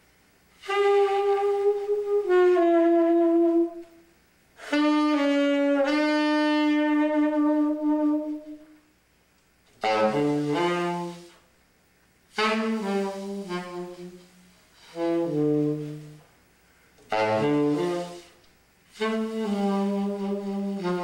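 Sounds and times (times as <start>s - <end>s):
solo saxophone long tones: 0.5s - 9.0s, 9.7s - 11.5s, 12.3s - 21.0s.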